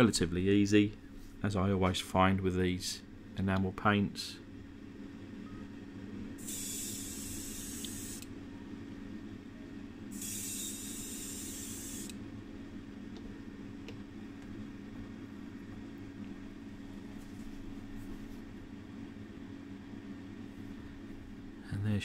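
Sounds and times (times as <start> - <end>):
steady low hum: 0.0 - 22.0.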